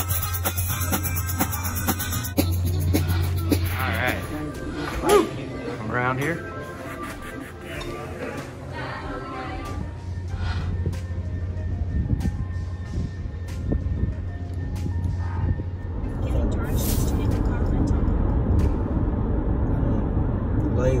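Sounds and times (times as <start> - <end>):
low hum: 6.4 - 21.0
car road and engine noise: 10.3 - 21.0.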